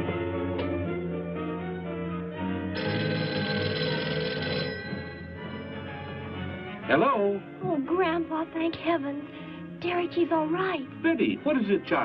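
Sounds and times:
film music: 0.0 - 12.0
telephone bell ringing: 2.7 - 6.2.

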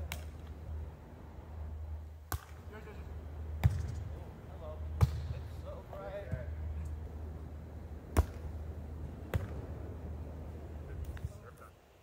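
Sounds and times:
volleyball smacks: 2.3 - 2.6, 3.6 - 4.0, 5.0 - 5.4, 8.1 - 8.5, 9.3 - 9.6.

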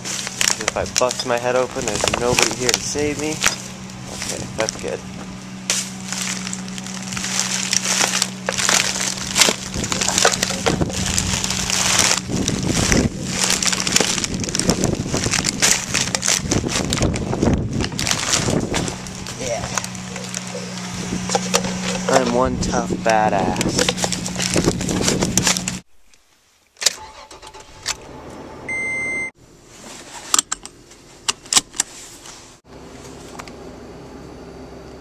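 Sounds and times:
foot stomping bags: 0.0 - 22.3
plastic bags crackling: 0.0 - 25.8.

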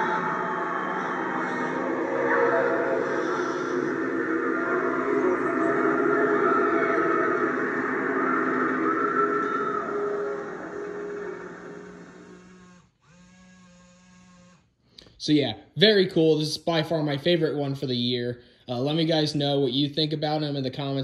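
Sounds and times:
eerie droning soundtrack from speaker: 0.0 - 12.8.

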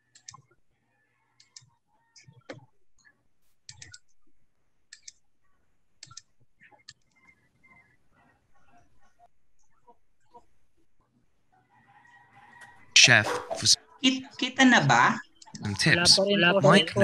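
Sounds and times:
computer mouse clicks: 0.0 - 0.6, 1.4 - 4.1, 4.9 - 5.2, 6.0 - 7.4.

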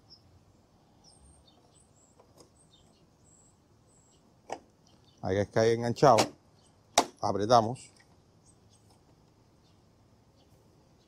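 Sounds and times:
faint high bird chirps: 0.0 - 5.4.

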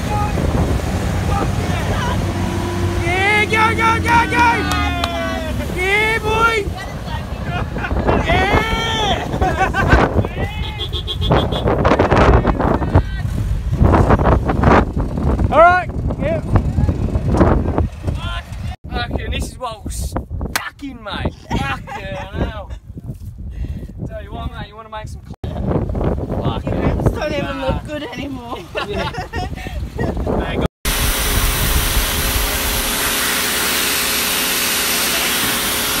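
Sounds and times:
wind rumble on microphone: 0.0 - 4.6, 5.2 - 33.1
vehicle engines under load: 0.0 - 18.8
pressure washer spraying: 30.9 - 36.0.

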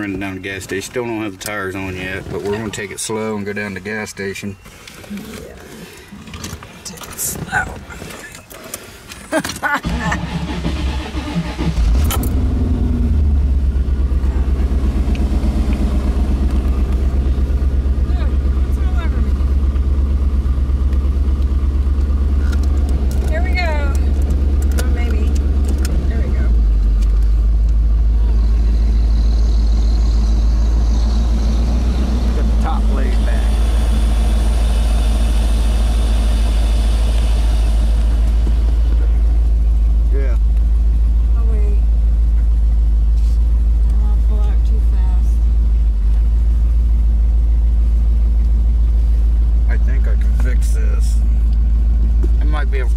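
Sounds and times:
car engine with pulsing exhaust: 0.0 - 52.9.

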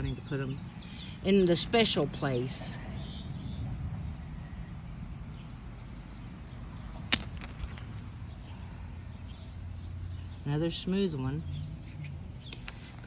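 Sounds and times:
rocks handled in hand: 7.1 - 8.6.

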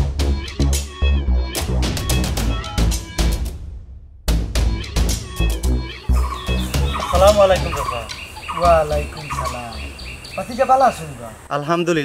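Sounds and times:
background music: 0.0 - 10.0
wavering bird calls: 5.5 - 11.5
drum hits: 6.5 - 8.0.

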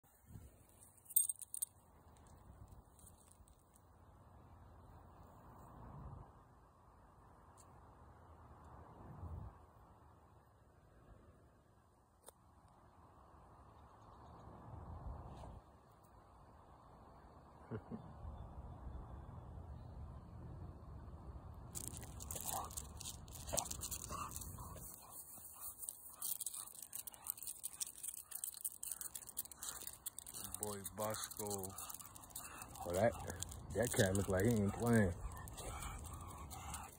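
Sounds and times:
faint low background noise: 0.0 - 22.7
scratchy rustling: 21.8 - 36.9.

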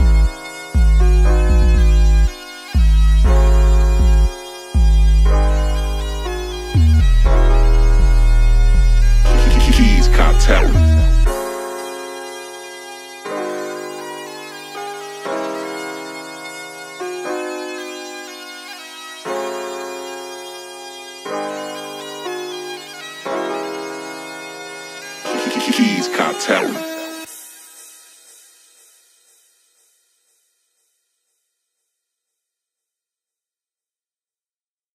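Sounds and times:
sustained keyboard chords: 0.0 - 27.3.

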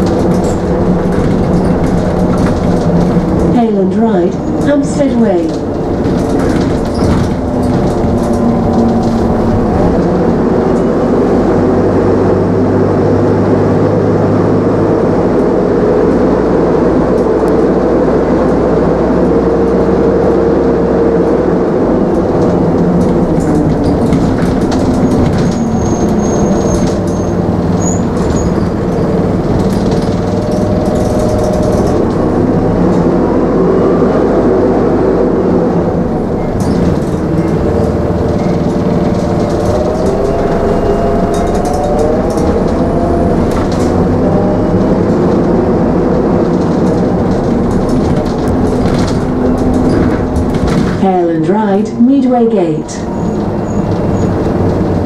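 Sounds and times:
bus body rattling: 0.0 - 55.0
bus engine and road noise: 0.0 - 55.0.

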